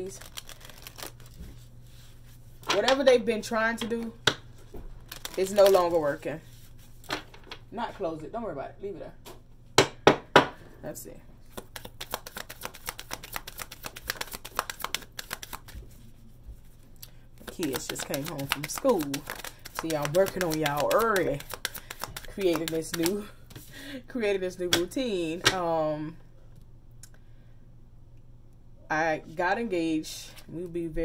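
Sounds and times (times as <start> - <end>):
cards being shuffled: 0.0 - 2.9, 4.7 - 7.1, 11.4 - 16.8, 17.4 - 23.7
low room hum: 0.0 - 31.0
cards clicking on wooden table: 17.5 - 23.2.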